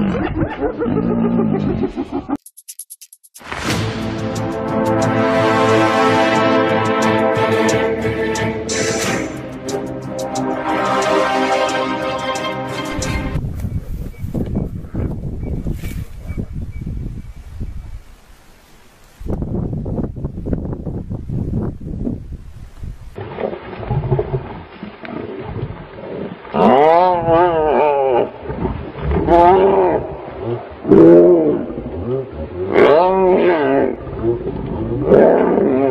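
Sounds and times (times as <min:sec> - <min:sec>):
low rumbling growls: 0:25.4 - 0:35.9.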